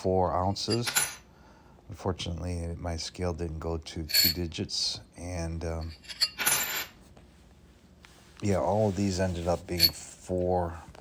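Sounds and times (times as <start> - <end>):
coins clinking: 0.6 - 1.2, 4.1 - 4.5, 5.8 - 7.0, 9.7 - 10.1.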